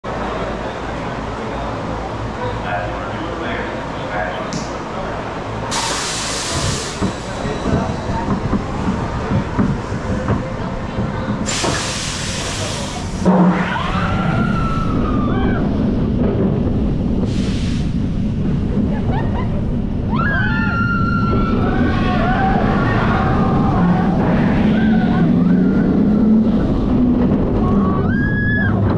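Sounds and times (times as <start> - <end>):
coaster wheels rumbling on track: 0.1 - 28.9
pneumatic air hiss: 5.7 - 7.4, 11.5 - 13.3
riders whooping: 13.5 - 15.9, 19.1 - 28.9.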